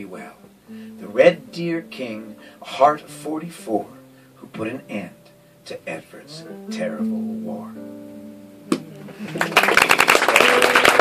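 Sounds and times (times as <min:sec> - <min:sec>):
held musical chord: 0:00.0 - 0:09.6
audience applause: 0:09.1 - 0:11.0.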